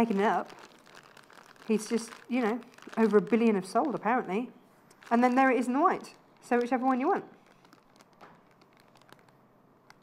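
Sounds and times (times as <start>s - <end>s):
plastic packet clicking: 0.0s - 4.1s, 4.9s - 10.0s.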